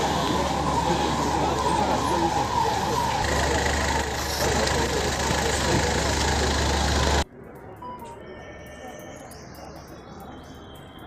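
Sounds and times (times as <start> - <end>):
street noise: 0.0 - 11.0
car engine running: 2.5 - 7.2.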